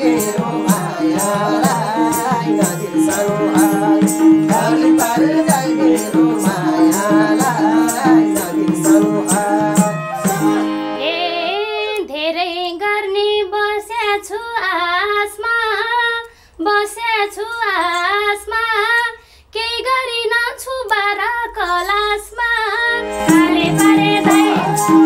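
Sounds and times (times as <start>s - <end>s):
woman singing folk melody: 0.0s - 25.0s.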